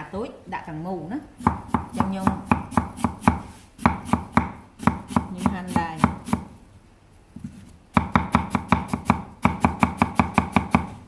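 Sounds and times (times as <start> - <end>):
knife chopping on wooden board: 1.4 - 6.5, 7.9 - 11.0.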